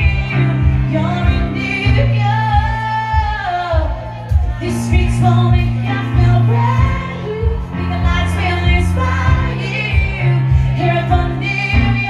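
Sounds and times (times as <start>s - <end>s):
piano accompaniment: 0.0s - 12.0s
woman singing: 0.0s - 12.0s.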